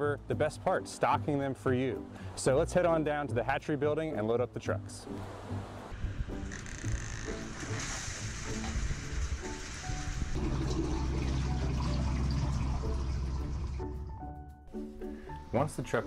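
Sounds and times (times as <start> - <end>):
background music with bass: 0.0 - 16.0
water rushing from a hose into a tank: 6.4 - 14.2.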